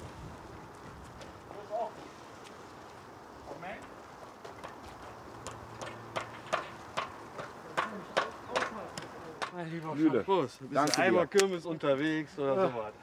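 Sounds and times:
sharp knocks on wood: 5.4s - 9.6s.

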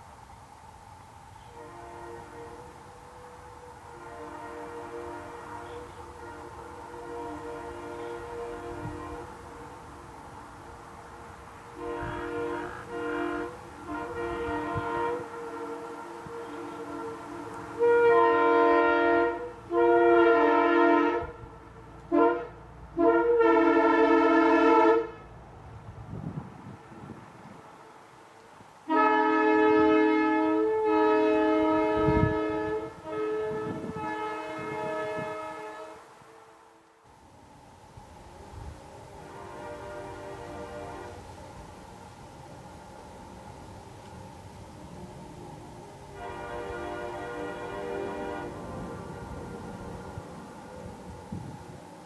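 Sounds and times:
air horn chord blasts: 1.3s - 9.7s, 11.7s - 21.5s, 22.1s - 25.2s, 28.9s - 36.8s, 39.2s - 41.3s, 46.1s - 49.6s.

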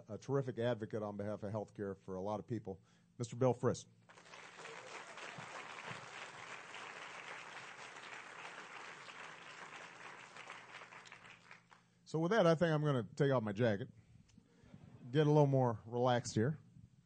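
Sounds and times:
audience applauding: 4.1s - 11.8s.

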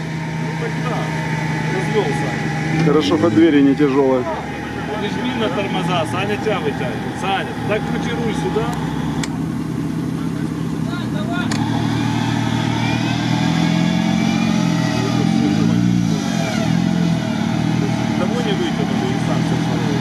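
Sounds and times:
engine revving under load: 0.0s - 20.0s.

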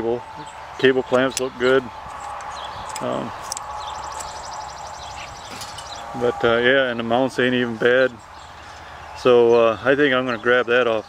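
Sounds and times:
faint bird chirps: 0.3s - 6.6s.

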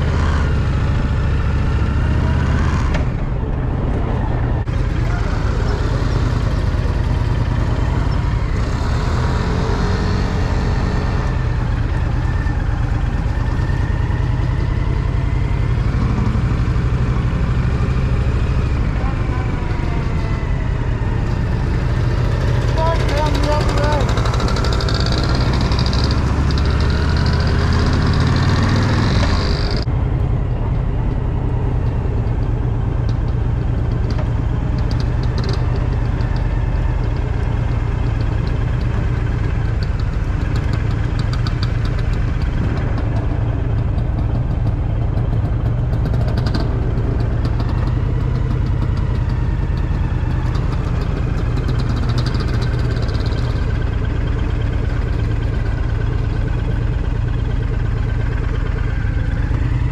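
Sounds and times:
motorcycle engine running: 0.0s - 3.8s, 4.6s - 59.9s
wind rushing over microphone: 2.5s - 5.7s.

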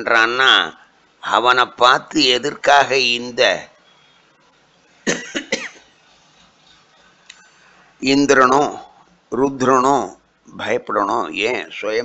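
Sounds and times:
person coughing: 5.1s - 5.9s.

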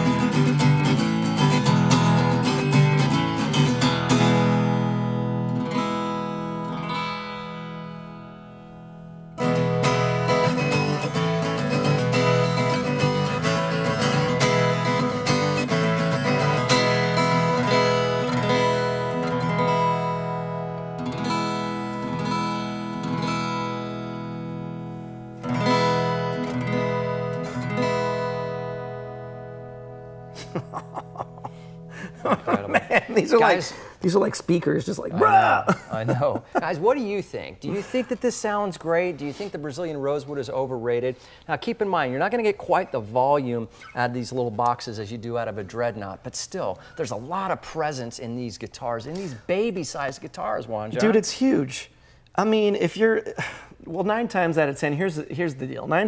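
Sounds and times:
acoustic guitar strumming: 0.0s - 33.9s.

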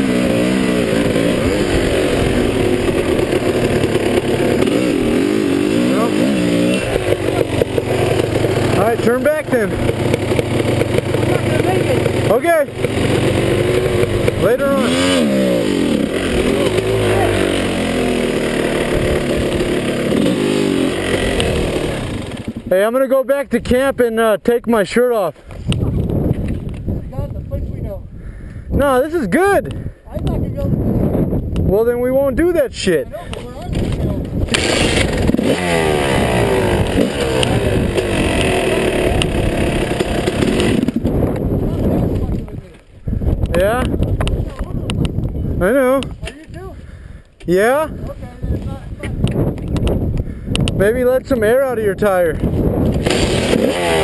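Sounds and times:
dirt bike engine revving: 0.0s - 23.0s, 33.8s - 42.2s, 52.7s - 54.0s.

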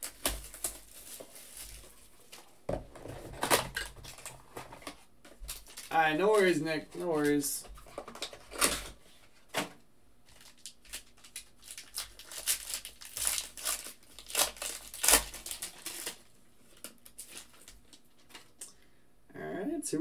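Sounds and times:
foil wrapper crinkling and tearing: 0.0s - 2.5s, 5.5s - 7.5s, 10.2s - 18.6s.

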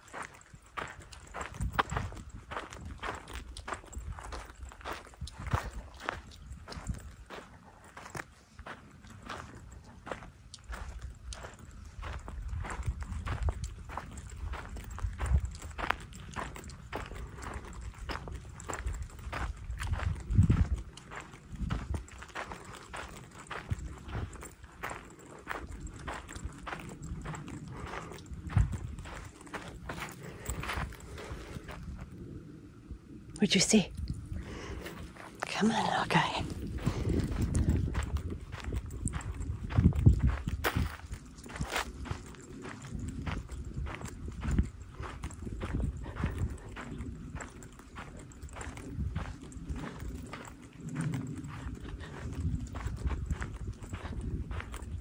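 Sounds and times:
footsteps on gravelly dirt trail: 0.0s - 55.0s.

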